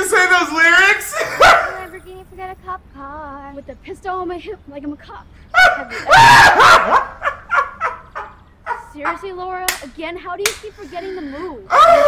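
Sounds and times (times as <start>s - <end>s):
man laughing hard: 1.1s - 1.7s, 5.6s - 8.4s.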